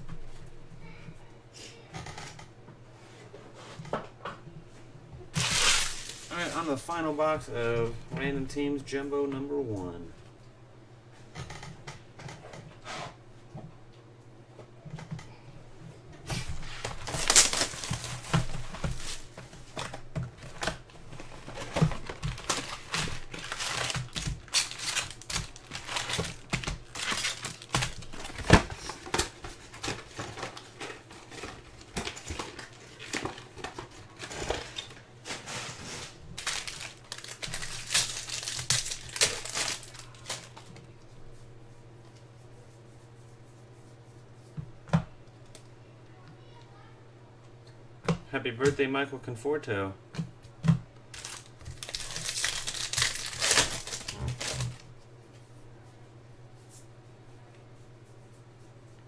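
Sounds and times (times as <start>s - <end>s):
foil wrappers crinkling and tearing: 5.3s - 7.0s, 16.3s - 40.9s, 51.0s - 54.9s.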